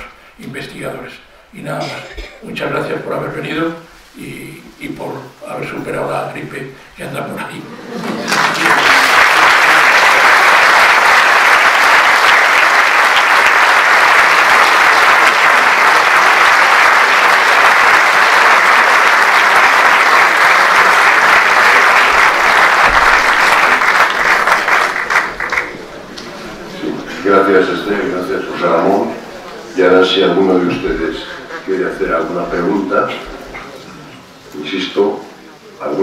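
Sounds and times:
audience applauding: 7.9s - 32.4s.

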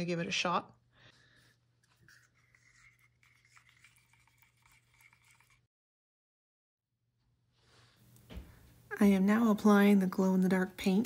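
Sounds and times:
chopstick stirring paint in bottle: 1.8s - 5.7s.

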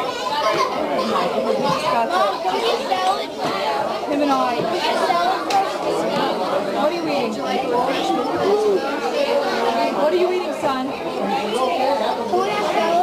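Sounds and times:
restaurant crowd chatter: 0.0s - 13.0s.

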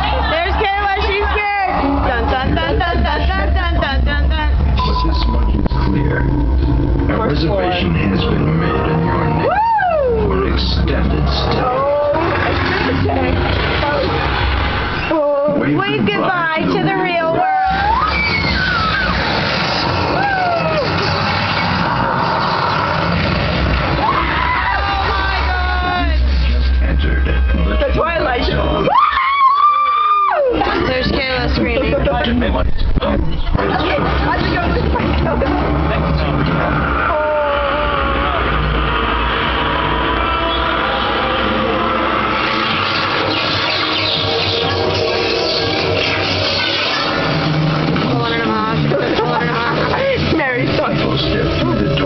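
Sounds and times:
deep rumble: 0.0s - 15.5s, 17.8s - 28.7s, 30.9s - 46.4s
music and sound effects: 1.8s - 9.5s, 10.2s - 16.2s, 17.7s - 28.9s, 37.9s - 52.0s
falling wail: 8.6s - 10.6s, 17.3s - 26.2s, 28.8s - 30.8s, 35.8s - 48.1s.

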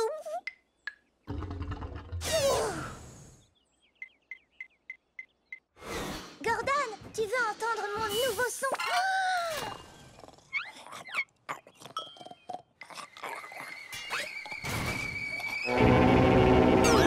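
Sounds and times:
loud low multi-tone blast: 15.7s - 17.0s.

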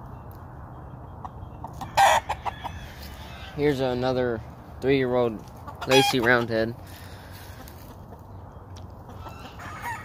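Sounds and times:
distant rooster crowing: 1.8s - 3.7s, 9.2s - 10.0s.

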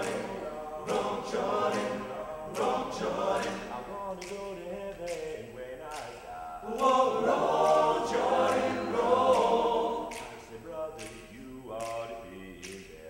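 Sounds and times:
male choir singing in harmony: 0.0s - 13.0s.

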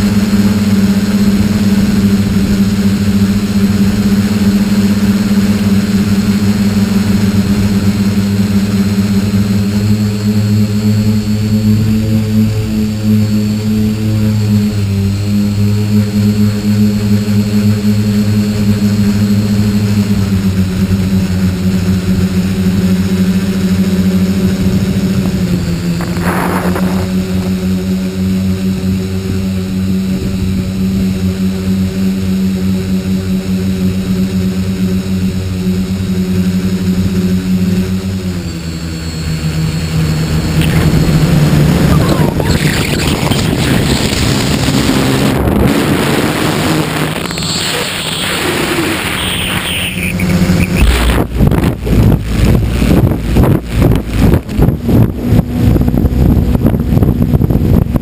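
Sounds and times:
drone motors and propellers droning: 0.0s - 58.0s.

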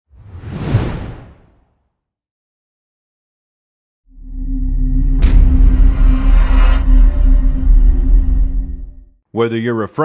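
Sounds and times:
deep whoosh: 4.4s - 9.0s.

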